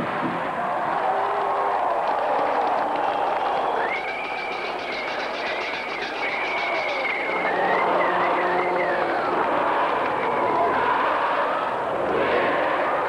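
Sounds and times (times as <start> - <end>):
stadium crowd noise: 0.0 - 13.0
high wavering held tone: 3.9 - 9.4.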